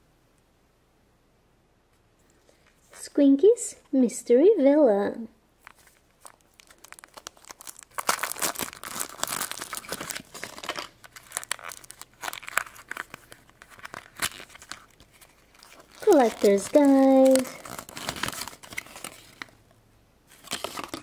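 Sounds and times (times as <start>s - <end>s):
plastic and foil wrapping crinkling: 5.6s - 19.6s, 20.3s - 21.0s.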